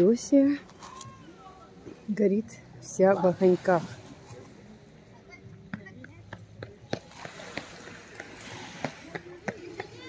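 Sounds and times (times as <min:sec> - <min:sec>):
distant voices: 0:00.6 - 0:10.0.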